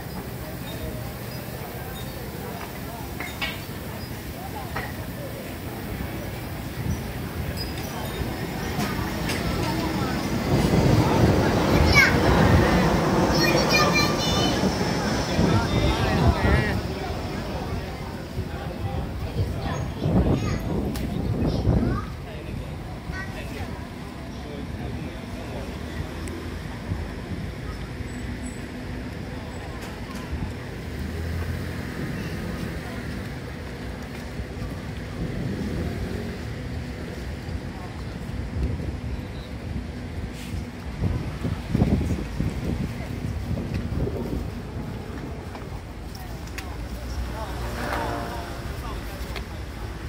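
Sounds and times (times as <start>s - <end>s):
indistinct chatter of passersby: 0.0s - 50.0s.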